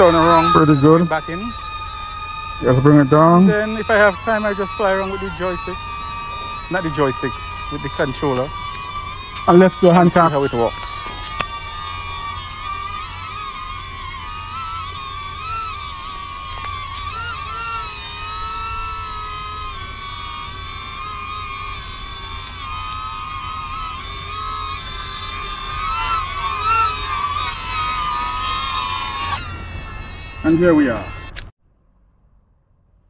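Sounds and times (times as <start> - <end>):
drone propellers whining: 0.0 - 31.5.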